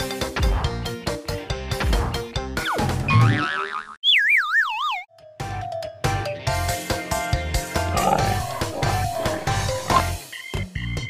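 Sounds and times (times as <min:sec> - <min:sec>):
upbeat background music: 0:05.4 - 0:10.9.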